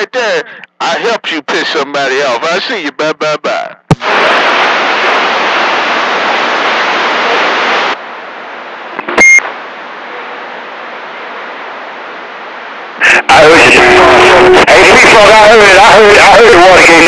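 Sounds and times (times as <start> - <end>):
radio static hiss: 0.0 - 17.0
short loud beep: 9.2 - 9.4.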